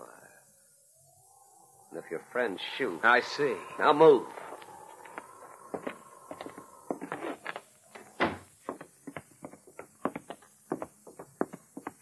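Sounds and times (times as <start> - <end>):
footsteps on wooden floor: 5.0 - 12.0.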